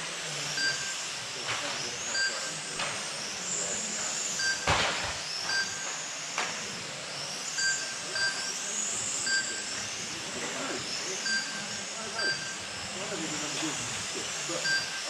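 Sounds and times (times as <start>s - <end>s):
electric motors whining: 0.0s - 15.0s
short electronic beeps: 0.6s - 0.9s, 2.1s - 2.6s, 4.3s - 4.7s, 5.4s - 5.9s, 7.6s - 8.6s, 9.2s - 9.8s, 11.2s - 12.7s, 14.6s - 15.0s.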